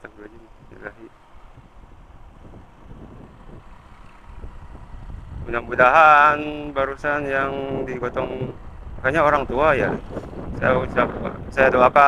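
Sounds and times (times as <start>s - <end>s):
motorcycle engine hum: 0.0s - 12.0s
road noise: 0.0s - 12.0s
wind rumbling on microphone: 0.1s - 12.0s.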